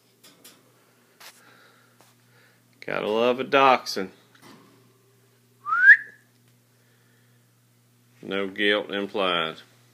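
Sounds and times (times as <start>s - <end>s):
rising whistle: 5.6s - 6.2s.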